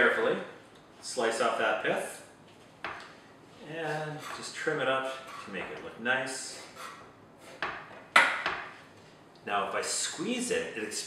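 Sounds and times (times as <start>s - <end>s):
knife scraping: 3.9s - 5.7s, 6.3s - 8.0s.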